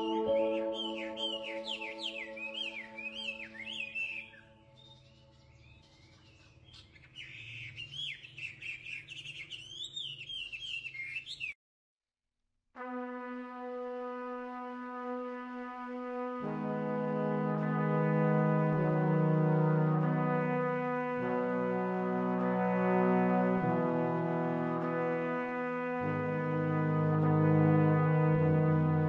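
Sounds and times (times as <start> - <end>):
held brass chord: 0.0 - 4.8, 12.8 - 29.0
songbirds chirping: 0.0 - 11.6
soft held music chords: 16.4 - 29.0.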